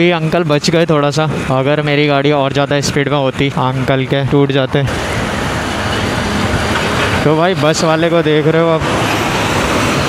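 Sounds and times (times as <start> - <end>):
bus passing close: 0.0 - 10.0
wind and road noise: 0.0 - 10.0.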